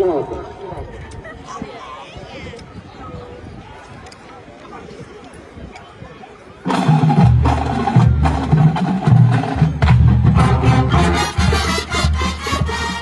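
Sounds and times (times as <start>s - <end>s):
marching drums and percussion: 6.6s - 13.0s
brass chords: 6.7s - 13.0s.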